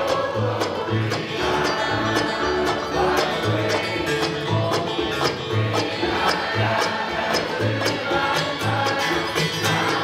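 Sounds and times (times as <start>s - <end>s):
bluegrass band playing: 0.0s - 10.0s.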